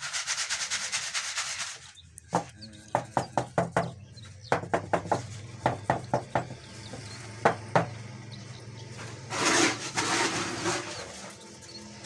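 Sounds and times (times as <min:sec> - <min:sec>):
mould scraping on concrete: 0:00.0 - 0:02.0, 0:09.0 - 0:11.8
sharp knocks of mould tapping: 0:02.3 - 0:06.6, 0:07.4 - 0:08.0.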